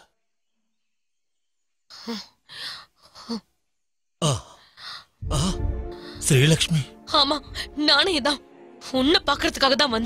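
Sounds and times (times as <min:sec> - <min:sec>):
person sighing: 0:05.2 - 0:06.3.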